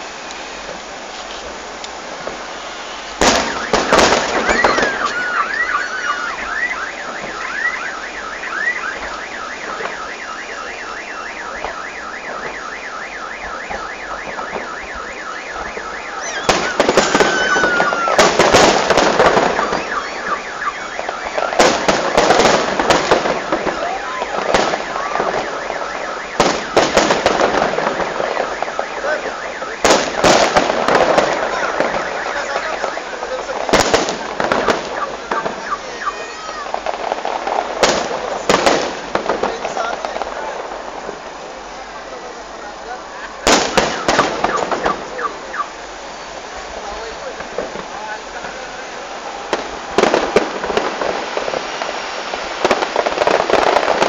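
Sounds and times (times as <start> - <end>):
fireworks bursting and crackling: 0.0 - 54.0
fast electronic chirp: 16.2 - 18.1.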